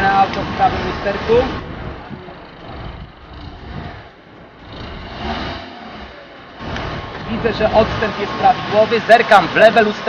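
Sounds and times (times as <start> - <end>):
car engine rumbling at low revs: 0.0 - 10.0.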